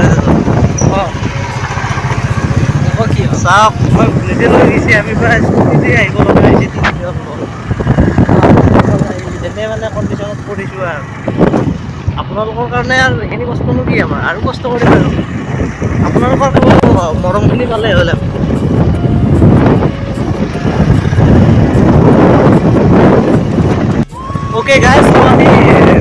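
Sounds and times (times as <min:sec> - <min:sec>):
loud rumbling noise: 0:00.0 - 0:12.5, 0:13.4 - 0:26.0.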